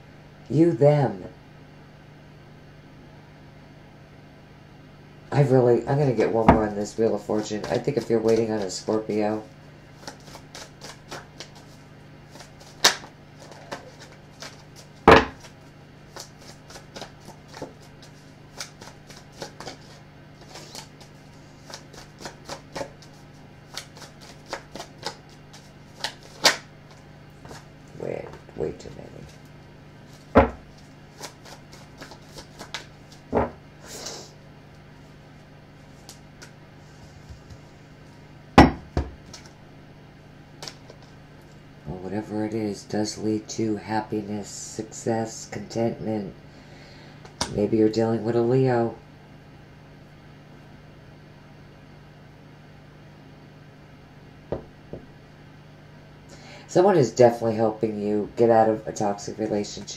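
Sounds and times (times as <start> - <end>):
faint steady hum: 0.0 - 59.9
cards being shuffled: 6.1 - 9.2, 10.0 - 33.5, 39.2 - 39.6, 40.6 - 41.2
cards knocking on table: 15.1 - 15.5, 30.4 - 30.7, 32.6 - 33.6, 38.6 - 39.4.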